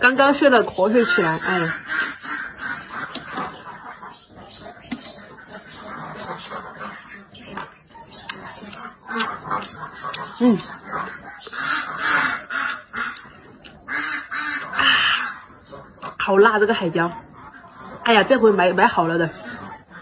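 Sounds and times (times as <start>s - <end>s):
ducks quacking: 0.0s - 20.0s
chewing clicks: 7.4s - 14.8s, 17.1s - 18.0s.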